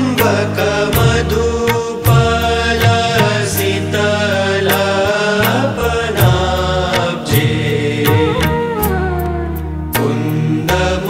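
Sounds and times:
low drone: 0.0s - 11.0s.

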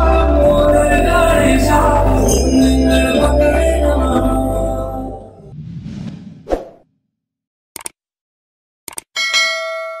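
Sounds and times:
quick clicks: 7.8s - 8.0s, 8.9s - 9.1s
notification bell ding: 9.2s - 10.0s.

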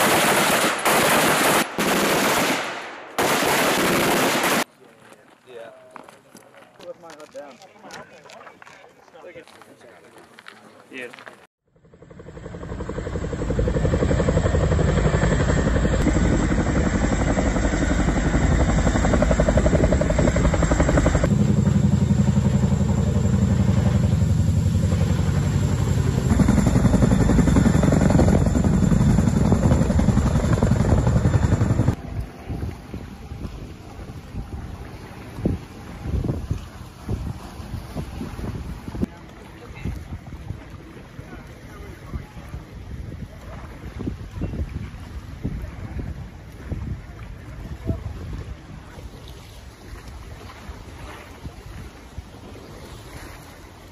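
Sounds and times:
helicopter rotor beat: 11.7s - 36.0s
choppy water: 11.9s - 53.9s
wind gusting on microphone: 22.9s - 39.2s, 39.8s - 52.9s.

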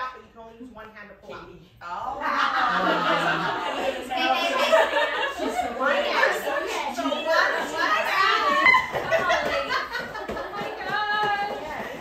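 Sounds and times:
women chattering: 1.3s - 12.0s.

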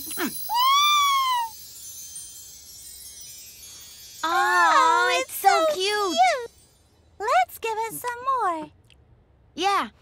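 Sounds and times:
shimmering chime sparkle effect: 0.0s - 7.3s.

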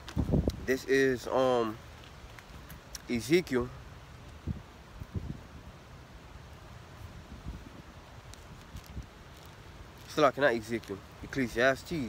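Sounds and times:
wind rumbling on microphone: 0.0s - 10.1s
faint outdoor hiss: 0.0s - 12.0s.

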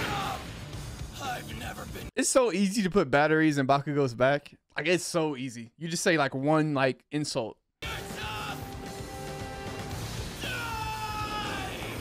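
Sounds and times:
high-pitched drawn-out shout: 7.8s - 8.7s, 10.4s - 12.0s.

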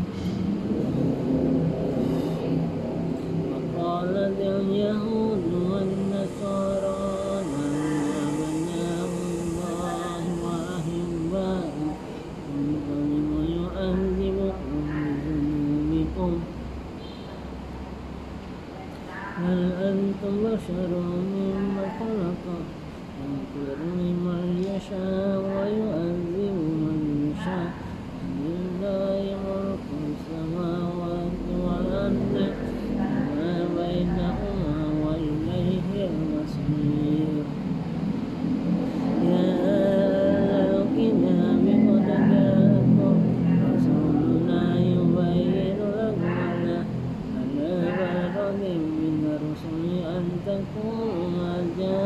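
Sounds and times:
low steady hum: 0.0s - 52.0s
man chanting: 3.3s - 16.6s, 19.1s - 37.9s, 38.5s - 52.0s.

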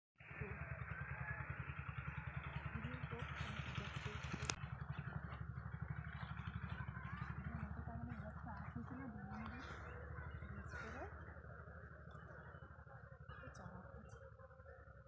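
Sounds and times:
small engine chugging: 0.2s - 15.0s.

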